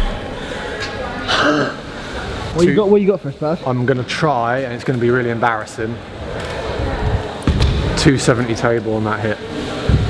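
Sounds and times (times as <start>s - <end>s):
loud thump: 7.4s - 7.9s.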